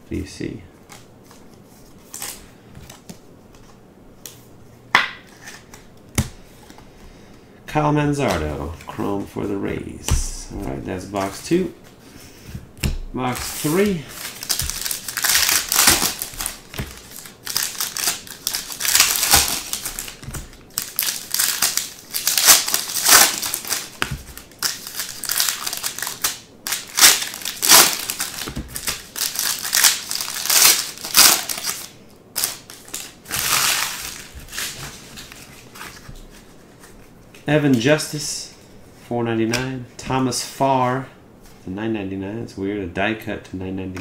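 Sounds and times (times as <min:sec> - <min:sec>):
foil wrappers crinkling and tearing: 0:13.3 - 0:36.0.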